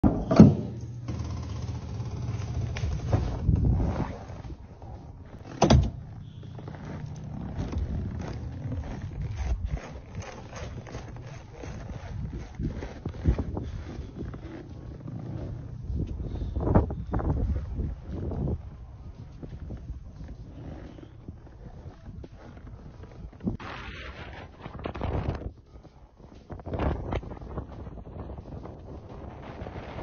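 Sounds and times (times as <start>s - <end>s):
wind buffeting microphone: 3.0s - 5.4s, 6.0s - 30.0s
heavy door thudding: 5.6s - 6.1s.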